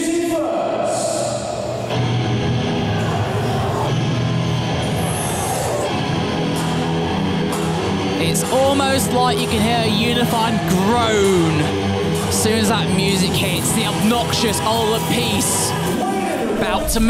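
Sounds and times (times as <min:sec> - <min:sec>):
rock music over loudspeakers: 0:01.4 - 0:17.0.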